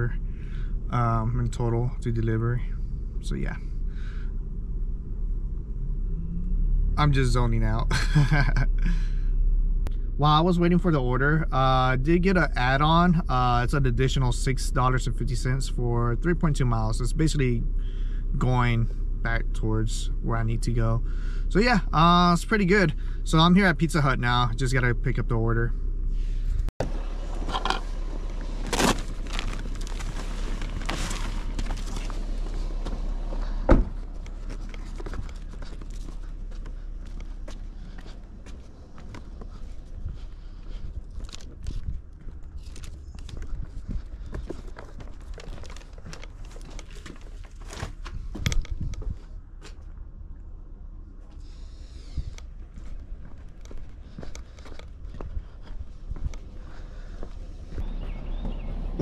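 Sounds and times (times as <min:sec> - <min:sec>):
footsteps: 0:27.4 - 0:50.0, 0:52.6 - 0:59.0
paper rustling and crinkling: 0:28.4 - 0:32.6, 0:44.3 - 0:48.1.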